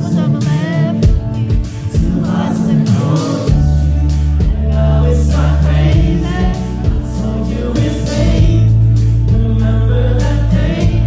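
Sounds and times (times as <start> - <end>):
acoustic guitar: 0.0 - 11.0
deep bass: 0.0 - 11.0
person singing: 0.0 - 11.0
steady drum beat: 0.0 - 11.0.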